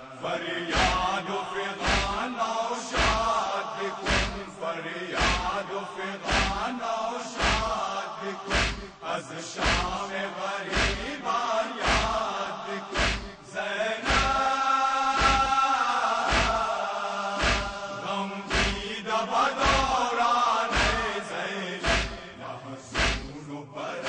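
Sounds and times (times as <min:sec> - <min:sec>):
male voices chanting in unison: 0:00.0 - 0:24.0
chest-beating thumps: 0:00.7 - 0:01.2, 0:01.8 - 0:02.2, 0:03.0 - 0:03.4, 0:04.0 - 0:04.6, 0:05.2 - 0:05.6, 0:06.3 - 0:06.7, 0:07.4 - 0:07.8, 0:08.4 - 0:09.0, 0:09.6 - 0:10.1, 0:10.7 - 0:11.2, 0:11.8 - 0:12.3, 0:12.9 - 0:14.4, 0:15.2 - 0:15.6, 0:16.3 - 0:16.7, 0:17.4 - 0:18.9, 0:19.6 - 0:20.0, 0:20.7 - 0:21.1, 0:21.8 - 0:23.4.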